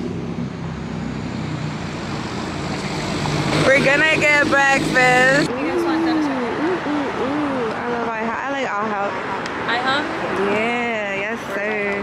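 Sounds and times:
vehicle engine passing close: 0:00.0 - 0:09.1
road noise: 0:00.0 - 0:12.0.

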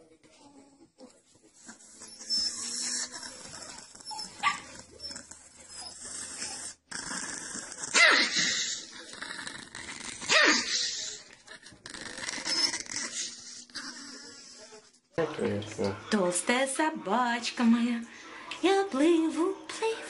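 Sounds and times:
dog barking: 0:04.4 - 0:04.7.

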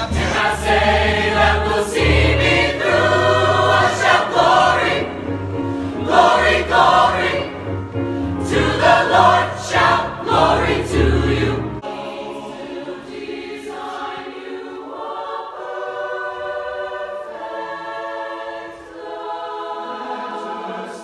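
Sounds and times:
choir singing: 0:00.0 - 0:21.0.

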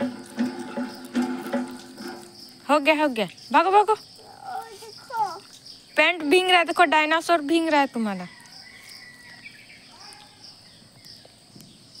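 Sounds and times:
high-pitched insect chirr: 0:00.0 - 0:12.0.

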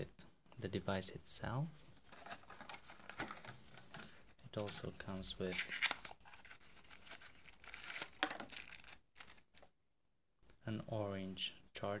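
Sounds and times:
plastic packaging crinkling: 0:05.5 - 0:09.7.

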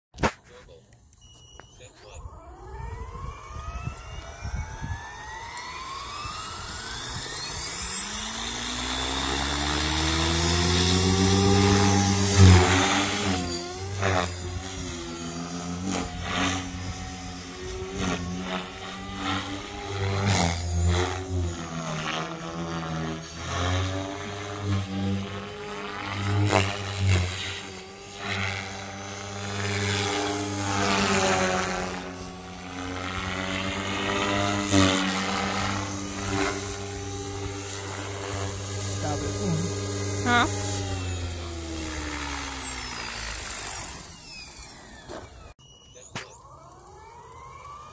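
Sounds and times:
rc helicopter rotor whine: 0:00.9 - 0:47.9.

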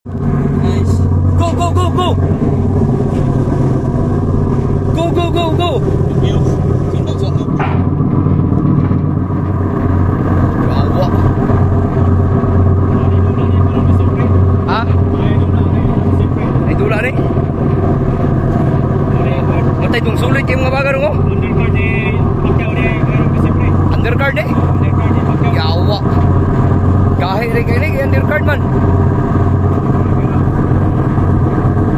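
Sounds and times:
ship diesel engine droning: 0:00.0 - 0:31.9
voices: 0:00.5 - 0:08.1, 0:10.2 - 0:28.8, 0:29.6 - 0:31.6.

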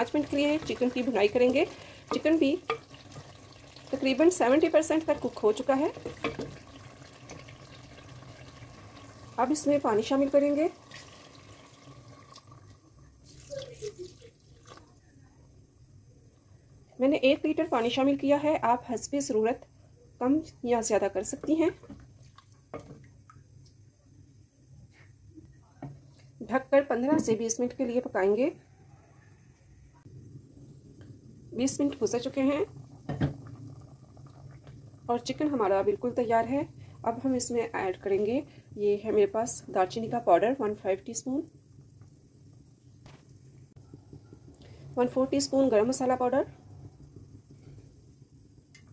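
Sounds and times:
water pouring into a pot: 0:00.0 - 0:15.6, 0:31.6 - 0:43.7.

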